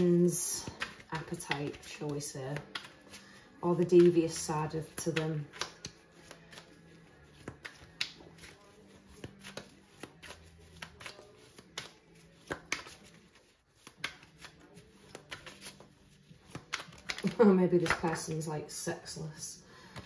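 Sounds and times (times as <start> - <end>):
cards being shuffled: 0.0 - 19.2.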